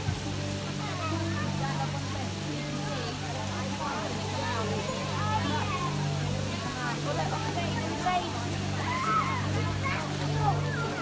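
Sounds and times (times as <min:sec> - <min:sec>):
even hiss: 0:00.0 - 0:11.0
people talking: 0:00.0 - 0:11.0.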